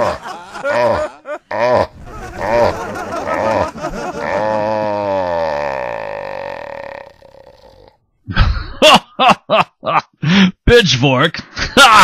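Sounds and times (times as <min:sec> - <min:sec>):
man laughing: 0:00.0 - 0:06.2, 0:08.3 - 0:10.2, 0:11.5 - 0:12.0
man speaking: 0:10.6 - 0:11.4.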